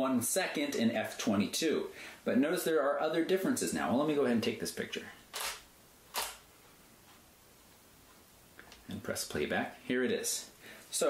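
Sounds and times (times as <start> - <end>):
camera shutter clack: 5.3 - 6.4.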